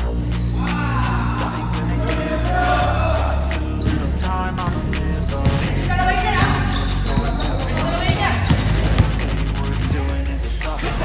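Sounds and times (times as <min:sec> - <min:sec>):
hip-hop music: 0:00.0 - 0:11.0
basketball bouncing on court: 0:03.8 - 0:09.6.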